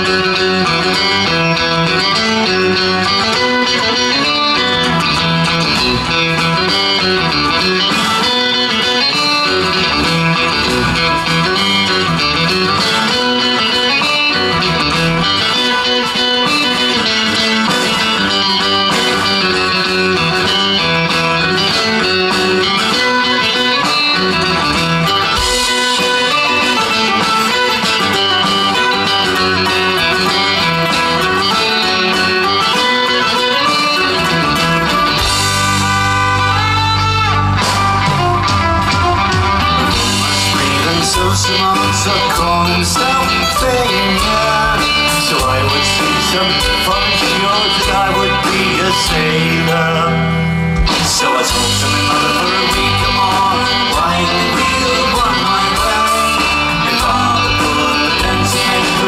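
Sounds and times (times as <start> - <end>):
drums: 0.0 - 59.0
electric guitar: 0.0 - 59.0
fiddle: 0.0 - 59.0
deep bass part: 34.2 - 59.0.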